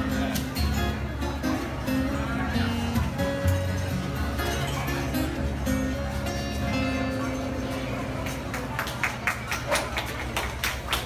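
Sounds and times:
scattered hand claps: 8.1s - 11.0s.

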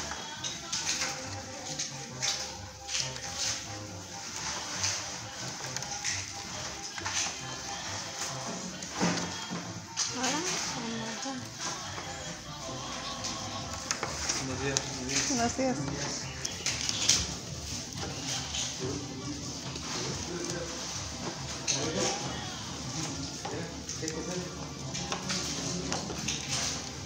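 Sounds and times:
indistinct background voices: 0.0s - 27.0s
music: 0.0s - 27.0s.

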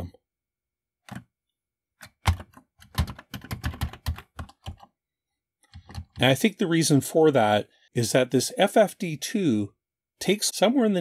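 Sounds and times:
keyboard keystrokes: 2.0s - 4.9s.

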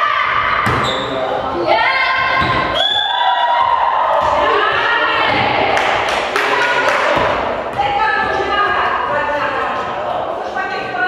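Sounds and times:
girls calling out and cheering: 1.7s - 7.2s.

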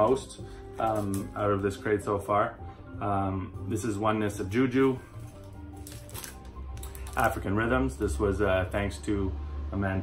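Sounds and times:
quiet background music: 0.0s - 10.0s
cardboard record sleeve rustling: 4.7s - 7.5s.

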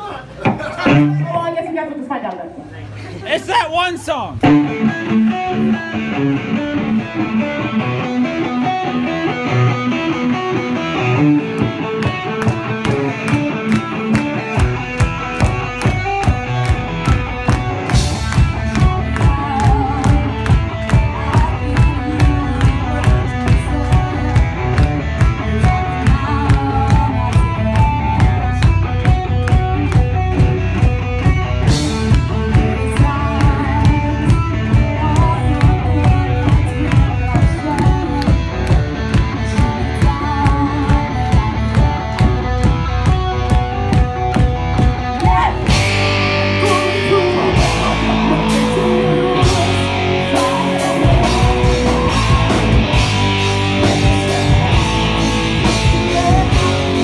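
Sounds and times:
drums and bass beat: 0.0s - 1.5s, 4.3s - 57.0s
electric guitar: 0.0s - 3.2s, 4.3s - 57.0s.

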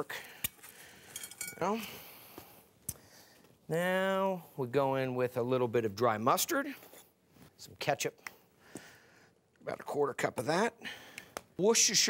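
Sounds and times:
light clink of glass: 1.2s - 1.6s.

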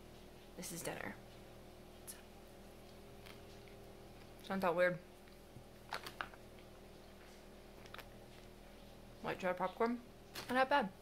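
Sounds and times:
faint room hum: 0.0s - 11.0s
mouth chewing food: 1.9s - 9.1s.

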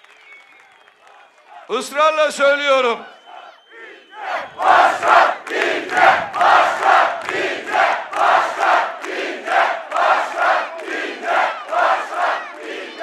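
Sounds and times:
crowd chanting in unison: 1.1s - 1.7s, 3.0s - 13.0s.

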